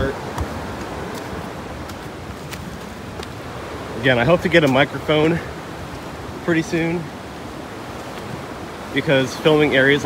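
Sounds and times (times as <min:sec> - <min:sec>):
footsteps on leafy rock: 0:00.0 - 0:03.6
water rushing: 0:00.0 - 0:10.0.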